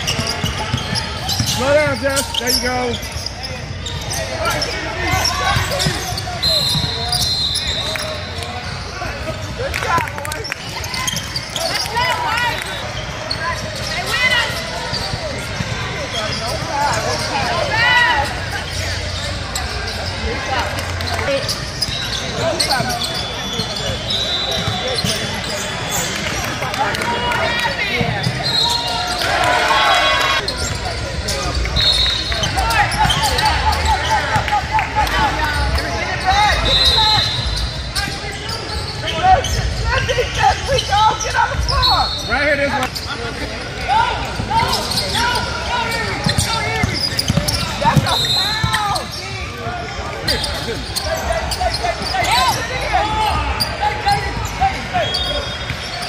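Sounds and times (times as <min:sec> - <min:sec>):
basketball bouncing on court: 0:00.0 - 0:02.0, 0:32.9 - 0:34.5, 0:46.2 - 0:48.9
sneakers squeaking: 0:00.0 - 0:56.0.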